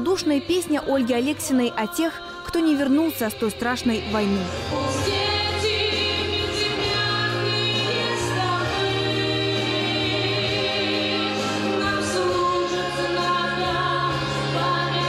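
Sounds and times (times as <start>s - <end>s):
woman singing with vibrato: 0.0s - 15.0s.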